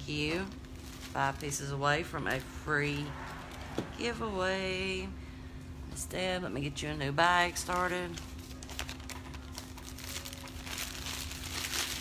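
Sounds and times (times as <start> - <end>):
plastic bag crinkling: 0.2 - 3.8, 7.6 - 12.0.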